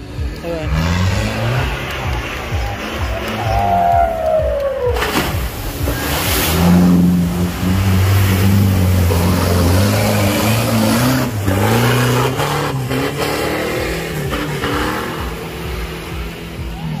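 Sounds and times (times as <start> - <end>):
off-road vehicle engine revving: 0.0 - 17.0.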